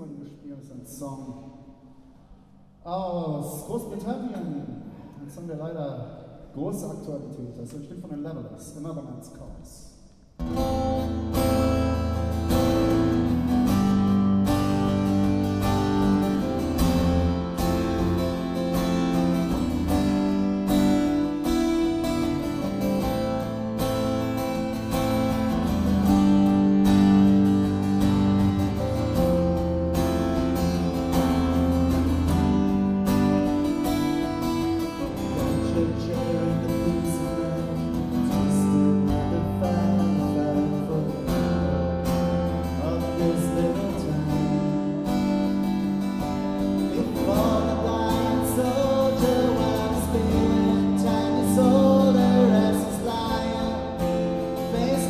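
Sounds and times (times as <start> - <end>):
acoustic guitar strummed and picked: 10.4 - 55.0
held melody line: 10.4 - 55.0.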